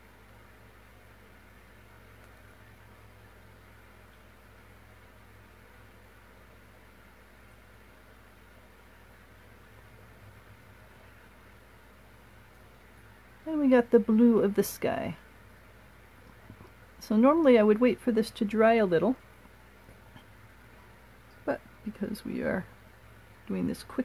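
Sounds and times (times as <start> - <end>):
faint low hum with hiss: 0.0 - 24.0.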